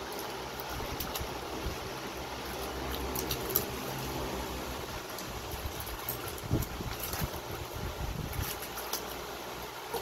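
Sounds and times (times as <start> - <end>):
dog splashing water in tub: 0.0 - 10.0.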